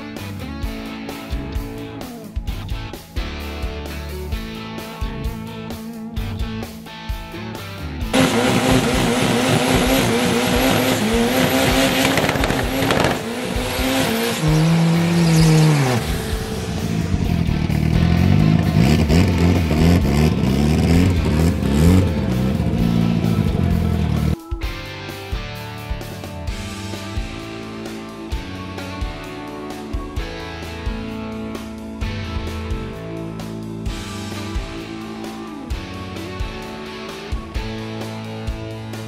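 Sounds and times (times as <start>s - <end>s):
music: 0.0s - 39.0s
drag car engine revving: 8.1s - 24.4s
sport-bike engines revving: 8.1s - 24.4s
tyre squeal: 11.8s - 16.2s.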